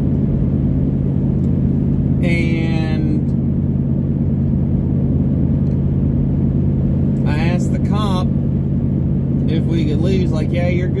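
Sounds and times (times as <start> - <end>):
car engine drone inside cabin: 0.0 - 11.0.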